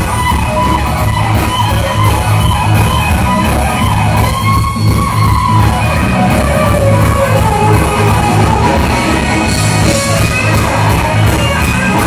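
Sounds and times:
electric guitar long bent note: 0:00.0 - 0:12.0
pulsing electric bass: 0:00.0 - 0:12.0.

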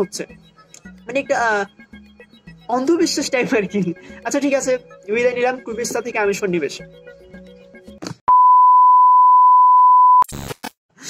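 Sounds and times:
censor bleep tone: 0:08.3 - 0:10.2.

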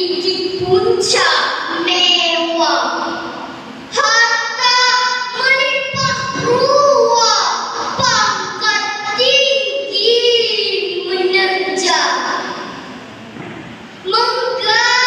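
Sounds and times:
girl reciting poem into microphone: 0:00.0 - 0:13.0, 0:13.9 - 0:15.0.

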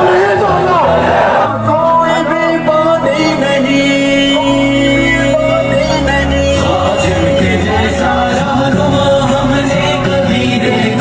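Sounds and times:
crowd noise: 0:00.0 - 0:11.0
music with man singing: 0:00.0 - 0:11.0.

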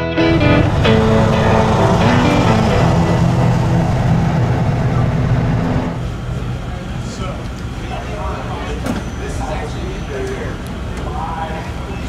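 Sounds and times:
music with sustained notes: 0:00.0 - 0:06.0
vehicle engine rumble: 0:00.2 - 0:12.0.

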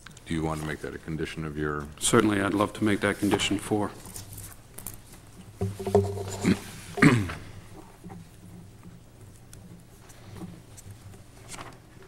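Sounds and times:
man clearing his throat: 0:06.4 - 0:07.6.

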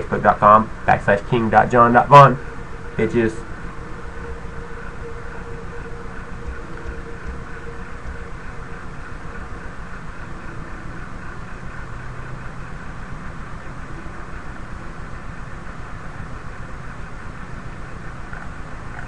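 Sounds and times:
faint hum: 0:00.0 - 0:19.0
steady rumbling noise: 0:00.0 - 0:19.0.

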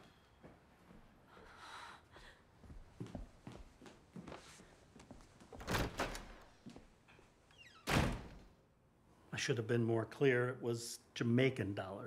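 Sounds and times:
door banging shut: 0:05.6 - 0:06.4, 0:07.8 - 0:08.5.

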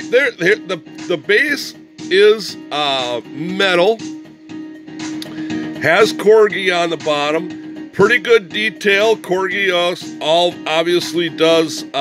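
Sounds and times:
guitar background music: 0:00.0 - 0:12.0.

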